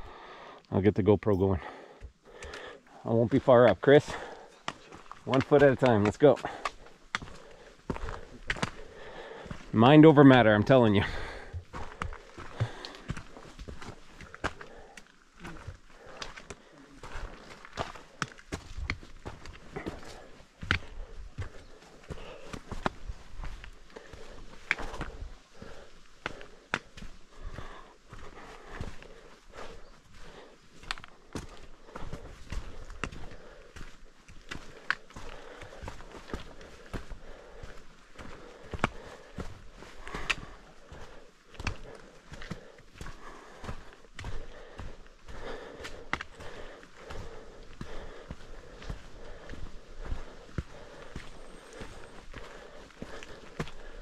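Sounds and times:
boots on rock and gravel: 1.5 - 54.0.

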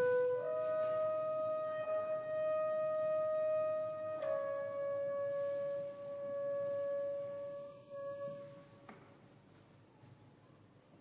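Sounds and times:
wind instrument long held note: 0.0 - 8.8.

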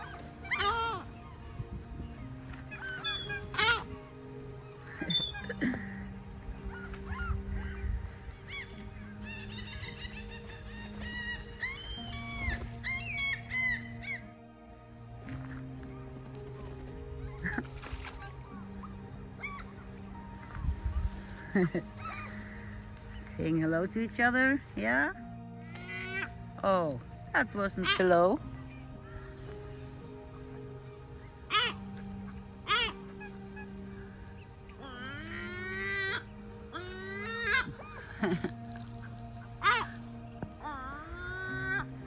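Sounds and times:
crows calling: 0.0 - 23.7, 25.2 - 26.6, 27.7 - 42.0
ducks calling: 0.0 - 26.6, 27.3 - 42.0
background music: 0.0 - 42.0
gulls calling: 0.0 - 42.0.

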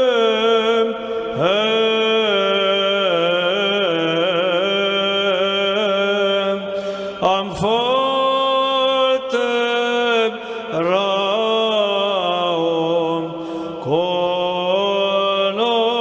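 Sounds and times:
voices singing church chant: 0.0 - 16.0.

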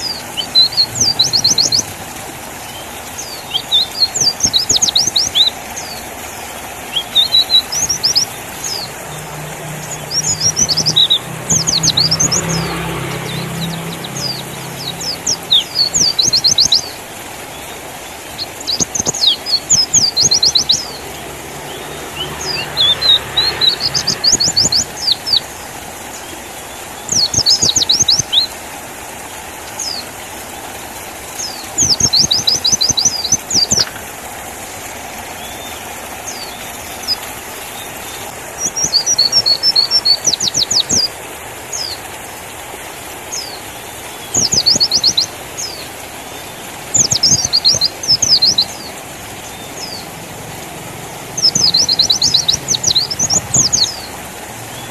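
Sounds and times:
bird high chirping trills: 0.0 - 2.0, 2.6 - 6.0, 6.9 - 17.0, 18.3 - 25.6, 27.1 - 28.5, 31.4 - 34.0, 44.2 - 50.1, 51.4 - 54.2.

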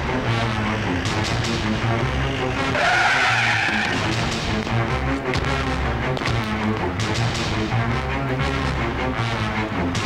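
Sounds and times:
film music: 0.0 - 10.0
car tyres squealing: 0.4 - 4.4.

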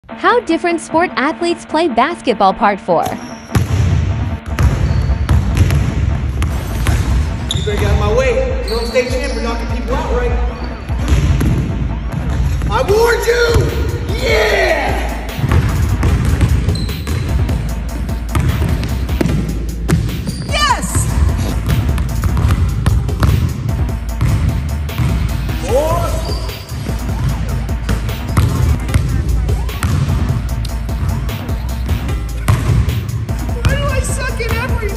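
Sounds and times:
music with heavy bass: 9.7 - 34.9
basketball bouncing on hardwood: 15.4 - 17.4, 18.3 - 20.5, 21.6 - 23.5, 27.9 - 29.1, 29.8 - 30.2, 32.5 - 32.9.

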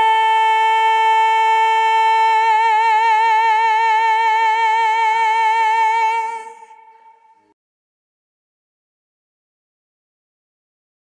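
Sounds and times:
woman singing long high note: 0.0 - 7.5.

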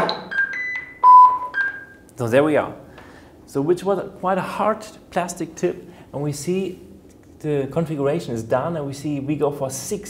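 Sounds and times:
short electronic beeps: 0.0 - 2.0.

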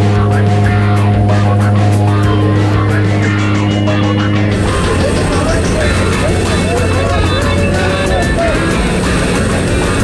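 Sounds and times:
aircraft engine roar: 0.0 - 10.0
melodic music: 0.8 - 10.0.

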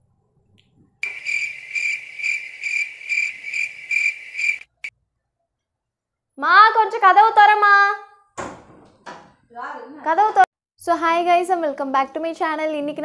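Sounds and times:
cricket chirping: 1.0 - 4.9.

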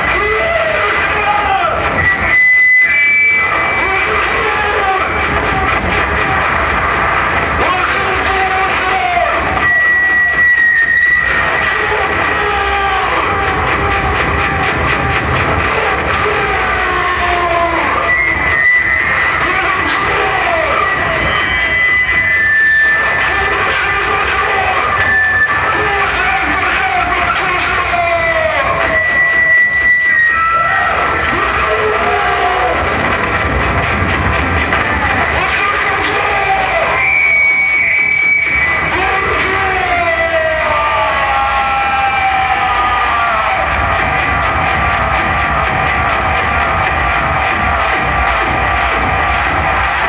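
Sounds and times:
distorted electronic noise: 0.0 - 50.0
high whine: 0.0 - 50.0.

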